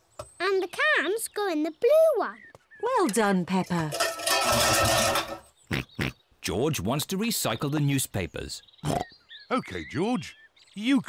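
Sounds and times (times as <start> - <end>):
tin cans clattering: 3.7 - 5.5.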